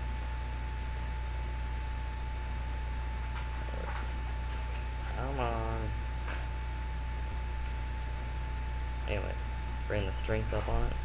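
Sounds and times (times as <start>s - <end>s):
low electrical hum: 0.0s - 11.0s
thin high whine: 0.0s - 11.0s.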